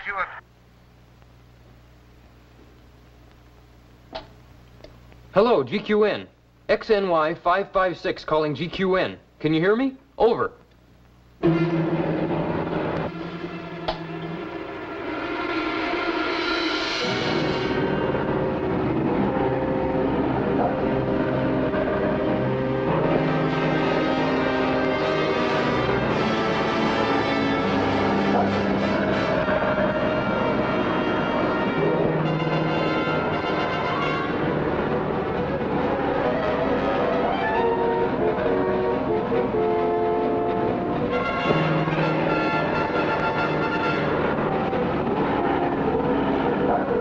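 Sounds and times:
dramatic orchestral music: 11.4 - 47.0.

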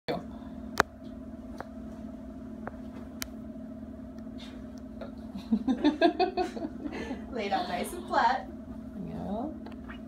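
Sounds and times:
appliance electrical hum: 0.1 - 10.0.

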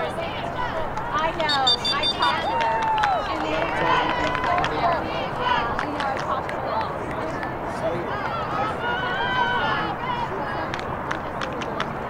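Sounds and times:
players calling out: 0.0 - 11.9.

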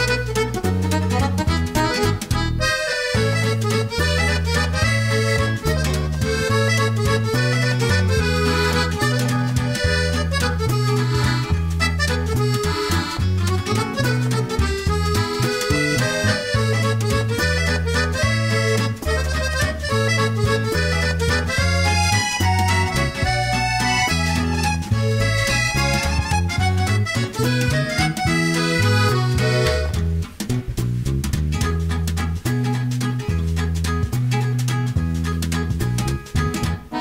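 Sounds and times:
background music with bass line: 0.0 - 37.0.

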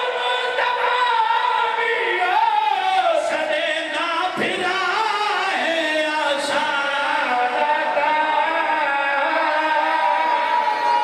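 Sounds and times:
men chanting a lament: 0.0 - 10.8.

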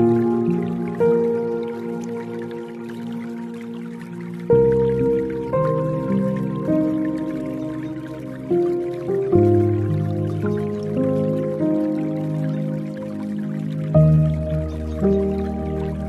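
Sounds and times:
dripping water: 0.0 - 16.0
soft solo piano music: 0.0 - 16.0.

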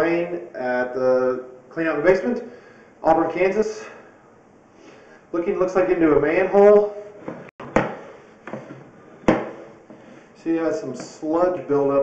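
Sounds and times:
low equipment hum: 0.0 - 12.0.

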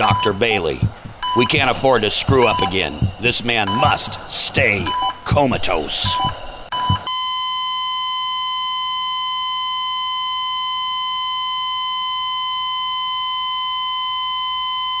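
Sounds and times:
heart monitor flatline tone: 0.0 - 15.0.

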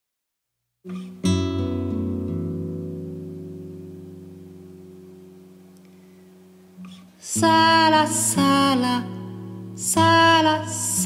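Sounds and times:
acoustic guitar chord ringing: 0.9 - 11.0.

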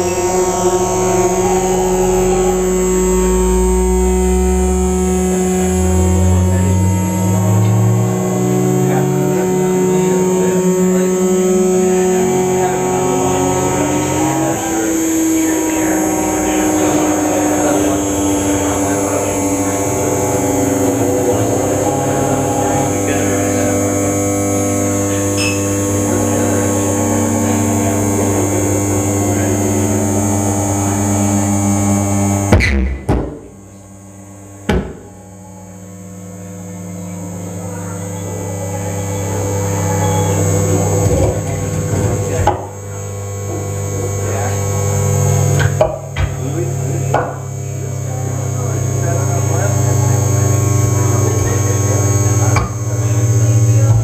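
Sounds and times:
layered electronic drones: 0.0 - 54.0
tone gliding upward: 0.0 - 54.0.

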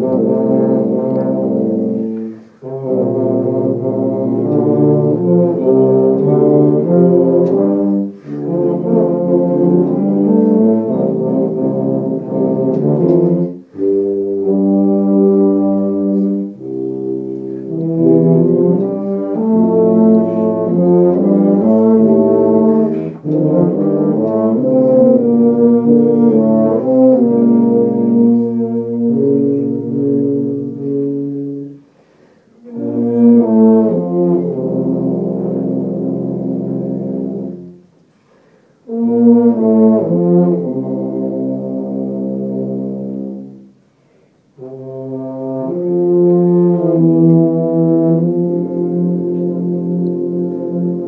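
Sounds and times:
low brass chords: 0.0 - 51.0.

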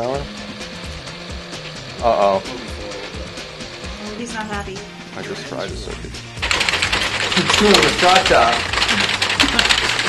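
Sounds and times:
robot tracks clattering: 0.0 - 10.0.

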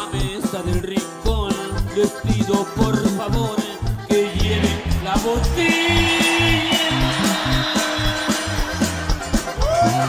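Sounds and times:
alternating bass line: 0.0 - 10.0
accordion long note: 1.8 - 10.0.

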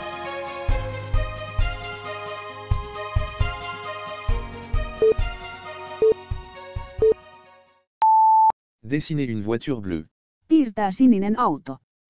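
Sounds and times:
backing music: 0.0 - 7.2.

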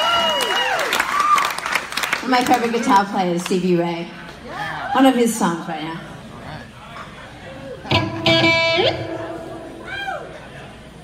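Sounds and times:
electric guitar chord with slide: 7.9 - 10.3.

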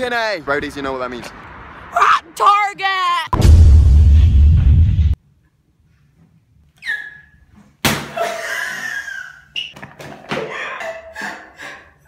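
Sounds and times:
excited yelling: 1.9 - 3.4
laughter: 8.2 - 9.5, 10.2 - 12.0.

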